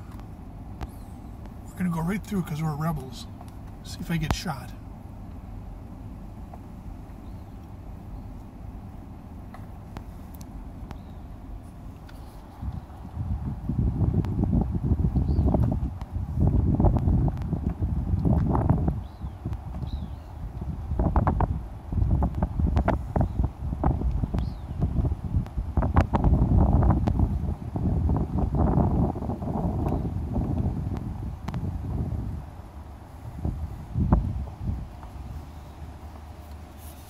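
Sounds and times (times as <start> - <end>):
wind buffeting microphone: 8.2 - 36.7.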